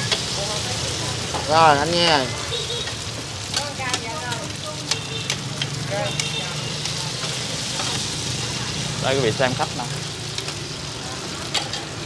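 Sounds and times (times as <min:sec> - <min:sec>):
food sizzling in hot oil: 0:00.0 - 0:12.0
metal spatulas scraping pan: 0:02.8 - 0:08.4.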